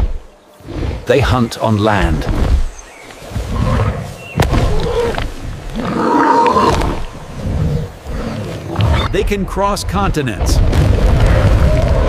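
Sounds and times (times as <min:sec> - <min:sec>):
deep creature roars: 0:05.8 - 0:07.7.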